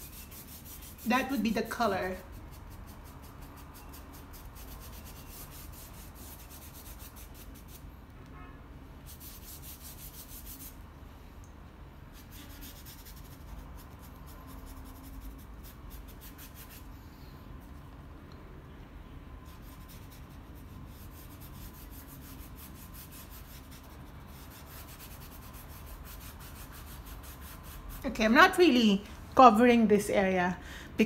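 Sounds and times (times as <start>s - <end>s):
paintbrush stroking on paper: 0.0s - 7.8s.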